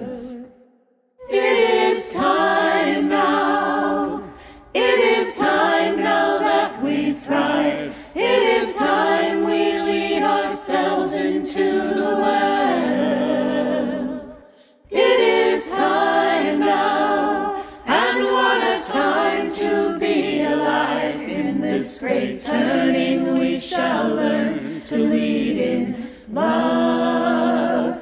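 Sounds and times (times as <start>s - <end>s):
choir singing a hymn: 0.0s - 0.5s, 1.2s - 28.0s.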